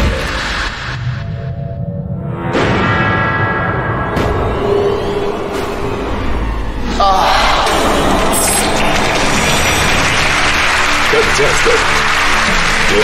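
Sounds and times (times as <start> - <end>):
tense game show music: 2.4 - 13.0
audience groaning: 6.8 - 11.1
audience applause: 7.5 - 13.0.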